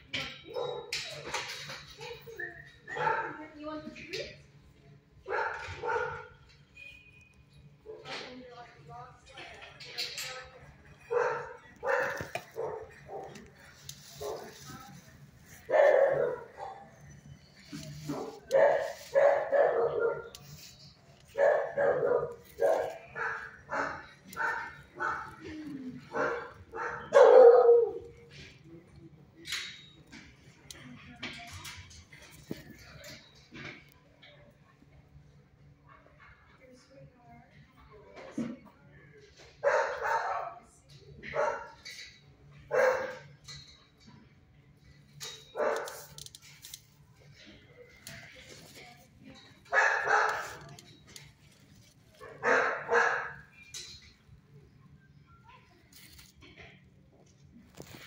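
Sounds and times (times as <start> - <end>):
dog barking: 0.5 - 1.0, 2.9 - 3.4, 5.3 - 6.4, 11.1 - 13.4, 14.2 - 14.6, 15.6 - 16.9, 18.1 - 20.4, 21.3 - 28.1, 39.6 - 41.8, 42.7 - 43.2, 45.5 - 46.1, 49.7 - 50.7, 52.2 - 53.5.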